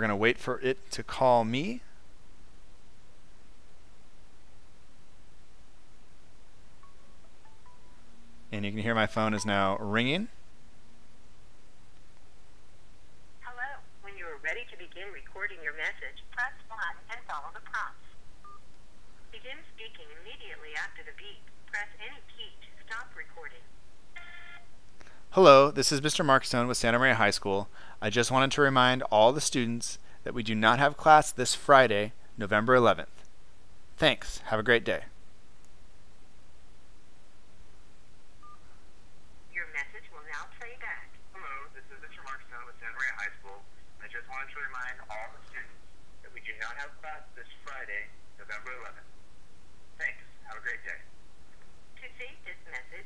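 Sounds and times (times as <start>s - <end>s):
low hiss on phone line: 2.7s - 10.4s, 24.2s - 33.3s
phone line hiss: 24.2s - 24.7s, 38.4s - 38.8s
automated voice over phone: 39.6s - 45.7s, 46.3s - 49.0s, 50.0s - 51.0s.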